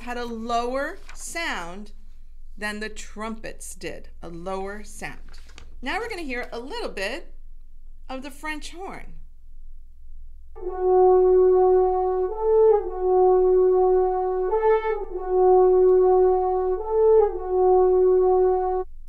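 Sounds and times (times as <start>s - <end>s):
french horn notes: 10.5s - 19.0s.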